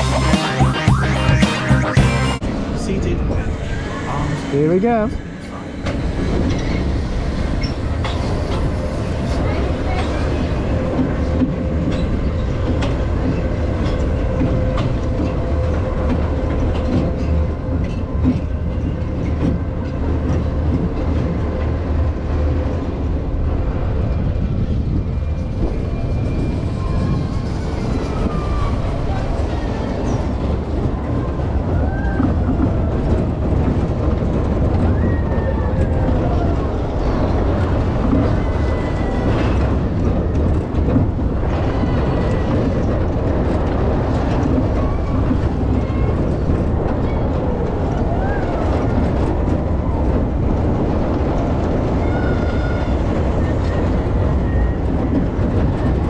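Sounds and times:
roller coaster wheels rumbling on rails: 0:02.3 - 0:56.0.

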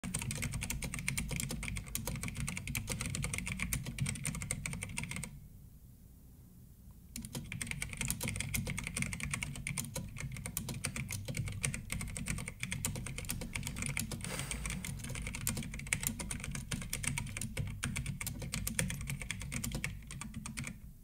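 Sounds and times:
rapid keyboard typing: 0:00.0 - 0:05.3, 0:07.2 - 0:20.8.

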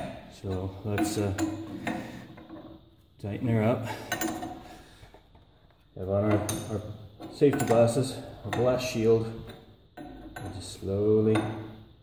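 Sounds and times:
light metal clinks: 0:04.0 - 0:04.6.

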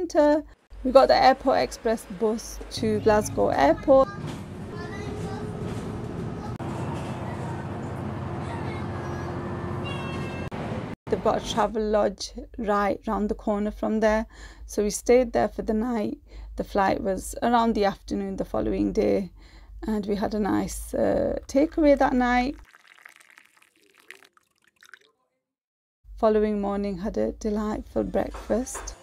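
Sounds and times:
bus engine and road noise: 0:01.7 - 0:11.0
water pouring into a mug: 0:21.5 - 0:25.2.

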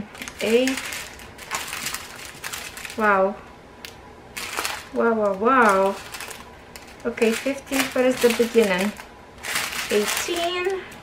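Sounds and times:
plastic bags crinkling: 0:00.0 - 0:03.2, 0:04.3 - 0:11.0.

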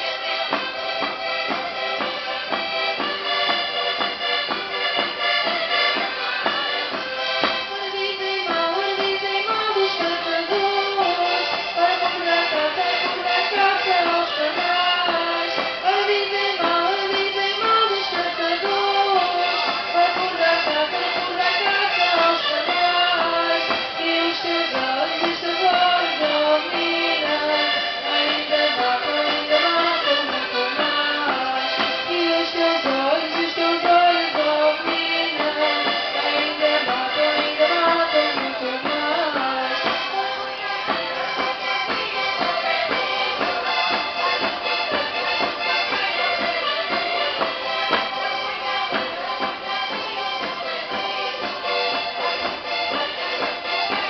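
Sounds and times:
accordion folk dance tune: 0:00.0 - 0:54.0.

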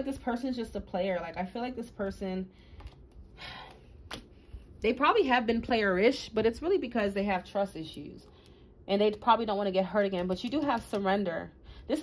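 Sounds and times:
woman speaking: 0:00.0 - 0:02.5, 0:04.8 - 0:12.0.

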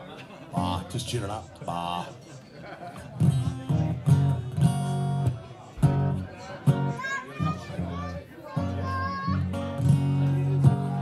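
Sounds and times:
child calling out: 0:06.9 - 0:09.6.

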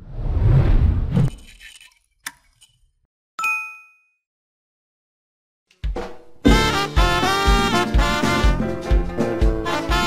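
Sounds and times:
notification bell ding: 0:03.4 - 0:04.2.

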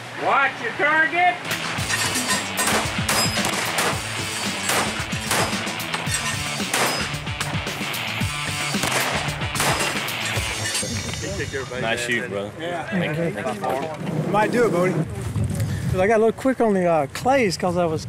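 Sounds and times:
gunshots: 0:01.5 - 0:07.3, 0:08.6 - 0:10.4
background music: 0:01.5 - 0:12.1.

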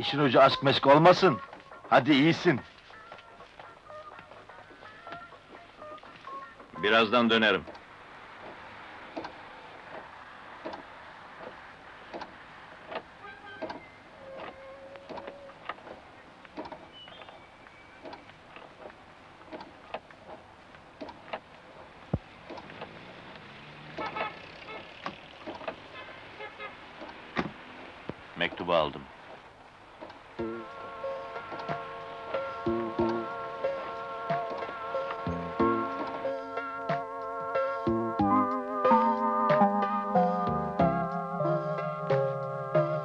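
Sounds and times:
car cabin running noise: 0:04.9 - 0:26.0
light clicks and knocks: 0:07.6 - 0:13.8, 0:14.4 - 0:23.0.

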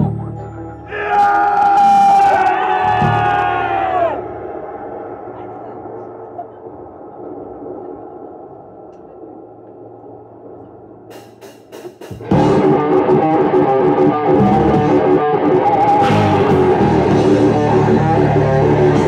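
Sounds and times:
crowd murmur: 0:02.4 - 0:10.1
metal band playing: 0:11.1 - 0:19.0.

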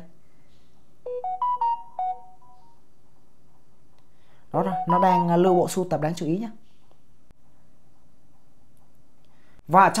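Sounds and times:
smartphone notification chime: 0:01.1 - 0:02.6, 0:04.6 - 0:05.7.

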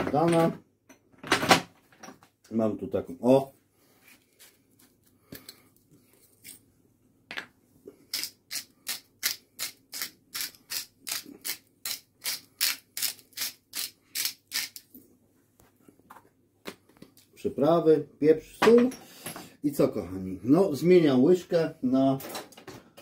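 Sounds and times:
pepper grinder grinding: 0:08.1 - 0:14.9.

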